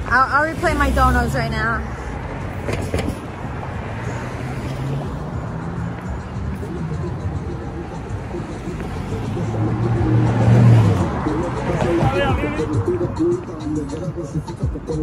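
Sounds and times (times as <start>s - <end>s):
voices: 0.0s - 2.0s, 6.4s - 15.0s
street traffic: 0.0s - 15.0s
car passing close by: 0.3s - 14.3s.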